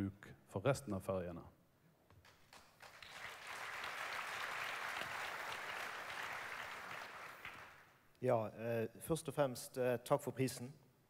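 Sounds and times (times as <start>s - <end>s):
audience applauding: 2.2s - 7.9s.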